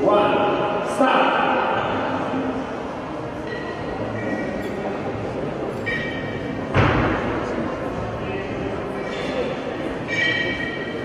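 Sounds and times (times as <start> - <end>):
busy hall background: 0.0 - 11.0
kettlebells heavy thud: 5.8 - 7.5.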